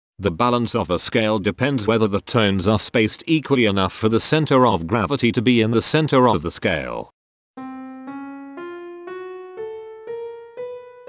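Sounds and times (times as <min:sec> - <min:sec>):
piano-like rising scale: 0:07.6 - 0:11.0.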